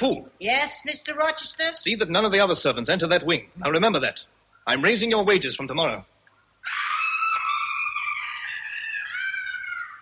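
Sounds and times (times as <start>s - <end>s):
woman wailing: 6.6s - 10.0s.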